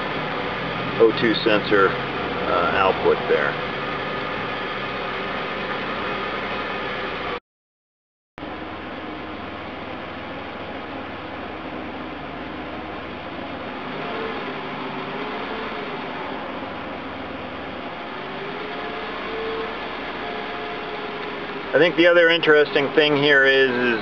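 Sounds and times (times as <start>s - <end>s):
car engine idling: 0.0s - 7.4s, 8.4s - 24.0s.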